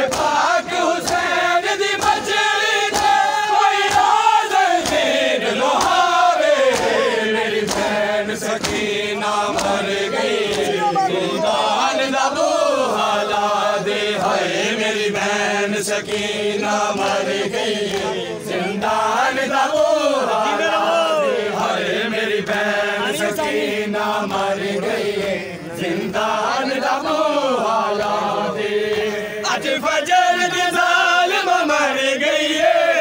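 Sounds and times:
men chanting a lament: 0:00.0 - 0:33.0.

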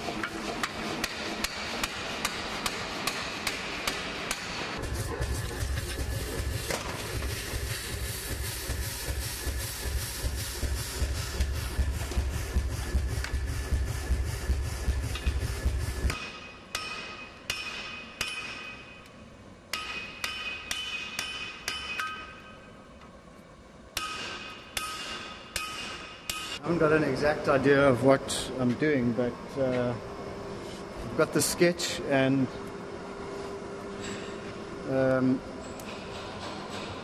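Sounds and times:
constant low rumble: 0:04.8 - 0:17.1
ringing hammer blows on anvil: 0:16.1 - 0:19.1, 0:19.7 - 0:22.7, 0:24.0 - 0:26.6.

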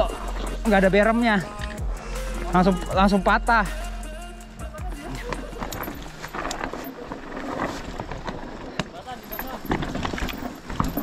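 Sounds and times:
bike tyres on dirt and stones: 0:00.0 - 0:11.0
bike chain rattling: 0:04.4 - 0:11.0.

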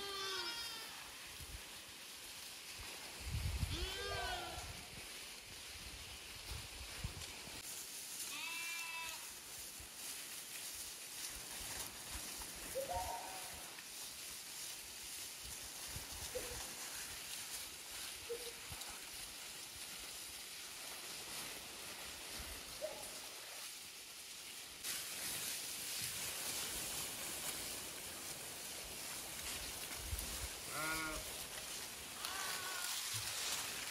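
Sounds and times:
sheep bleating: 0:30.7 - 0:31.3, 0:32.2 - 0:33.0.

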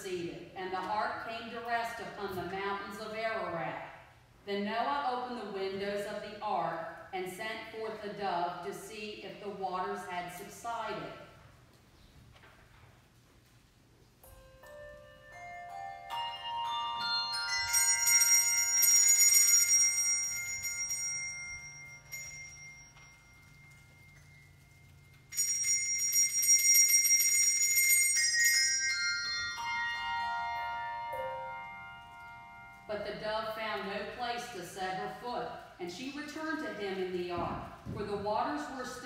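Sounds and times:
handbell choir ringing: 0:14.3 - 0:32.9.

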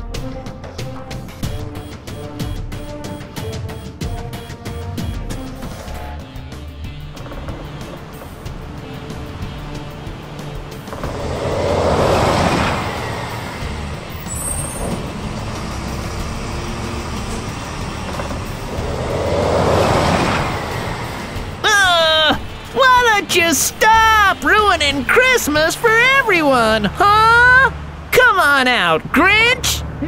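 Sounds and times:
background music: 0:00.0 - 0:30.0
cartoon truck engine rumble: 0:00.8 - 0:30.0.

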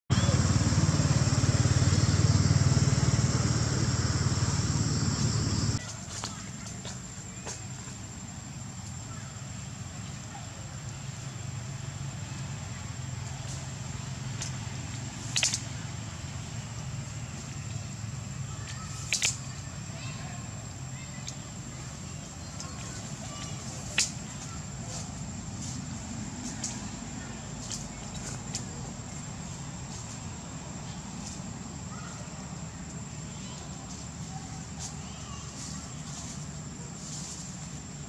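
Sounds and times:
loud low rumble: 0:00.1 - 0:05.8
steady high-pitched whine: 0:00.1 - 0:05.8
faint clicks: 0:19.0 - 0:19.5.

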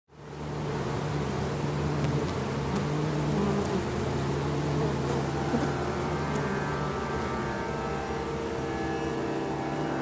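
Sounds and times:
honey bees buzzing: 0:00.1 - 0:10.0.

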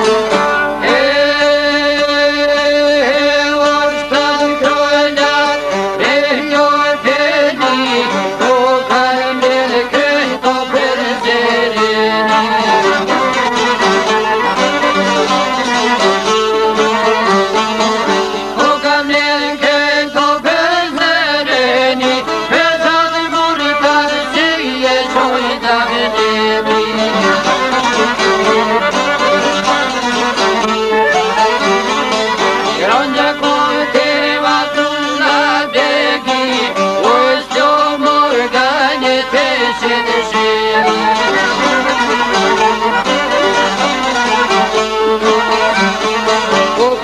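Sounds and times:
folk music on bowed strings: 0:00.0 - 0:47.0.

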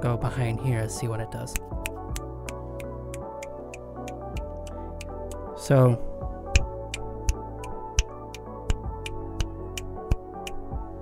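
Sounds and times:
background music with sustained tones: 0:00.0 - 0:11.0
finger snaps: 0:01.5 - 0:05.5, 0:06.5 - 0:10.6.

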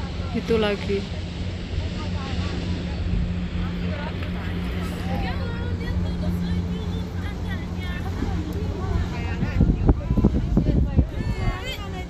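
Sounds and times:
boat engine droning: 0:00.0 - 0:12.0
people chattering faintly: 0:00.0 - 0:12.0.

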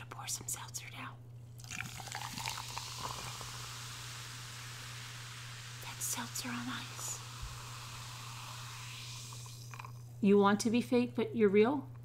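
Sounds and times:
seltzer fizzing over ice: 0:01.6 - 0:10.1.

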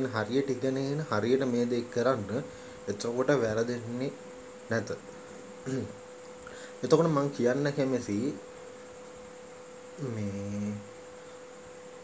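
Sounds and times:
faint steady tone: 0:00.0 - 0:12.0
man humming: 0:05.6 - 0:06.0, 0:10.0 - 0:11.0.

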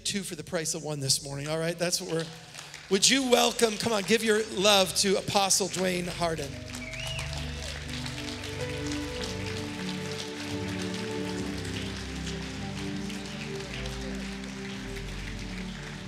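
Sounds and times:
crowd applauding: 0:01.4 - 0:16.0
worship music chords: 0:02.2 - 0:16.0.

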